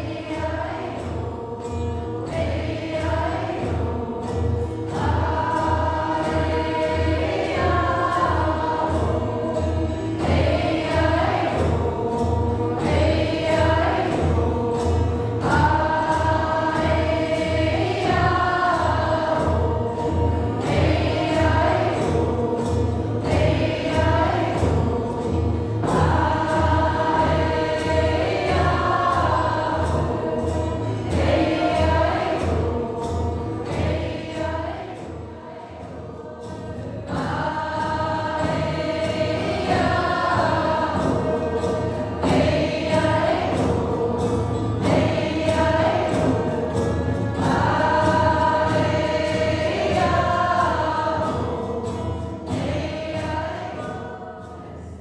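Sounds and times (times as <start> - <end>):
frame drum beats: 0.0 - 54.4
acoustic guitar: 0.0 - 55.0
group of voices singing: 0.0 - 55.0.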